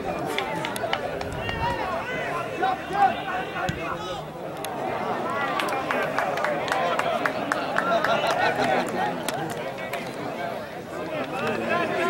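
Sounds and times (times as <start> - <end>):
voices shouting and calling: 0.0 - 12.0.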